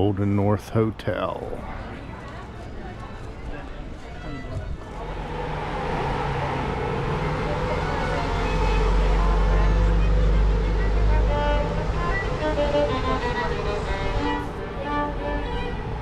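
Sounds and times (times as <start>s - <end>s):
large vehicle engine droning: 1.7s - 16.0s.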